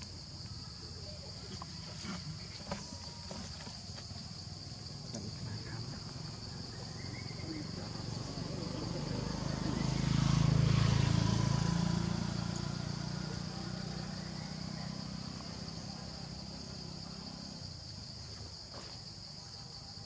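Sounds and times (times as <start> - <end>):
high drone of insects: 0.0 - 20.0
motor vehicle passing: 5.3 - 18.1.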